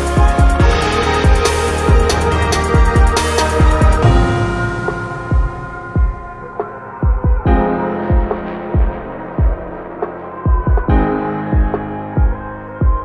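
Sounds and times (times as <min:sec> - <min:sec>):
kick drum beat: 0:02.8 - 0:09.7, 0:10.5 - 0:13.0.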